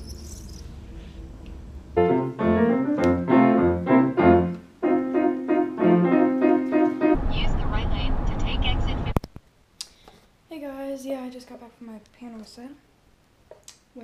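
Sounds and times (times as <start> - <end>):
grand piano playing: 2.0 - 7.3
car cabin road rumble: 7.2 - 9.2.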